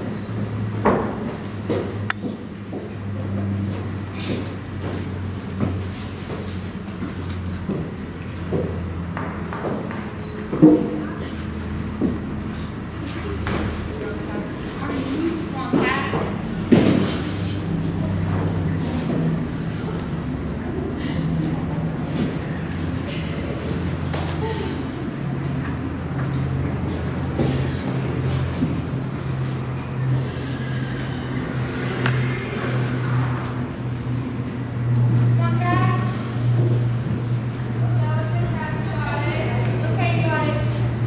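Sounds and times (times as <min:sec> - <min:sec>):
steady low hum: 0:00.0 - 0:41.0
indistinct voices: 0:10.9 - 0:41.0.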